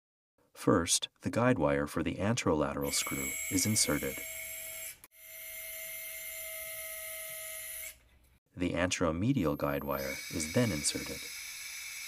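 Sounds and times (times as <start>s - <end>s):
power wire driver whining: 9.7s - 12.0s.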